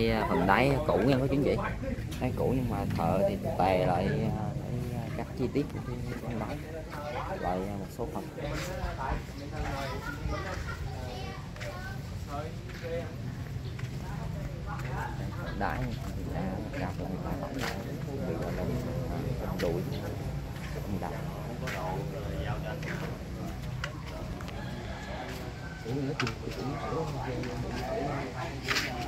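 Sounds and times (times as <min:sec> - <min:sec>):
indistinct voices talking: 0:00.0 - 0:29.0.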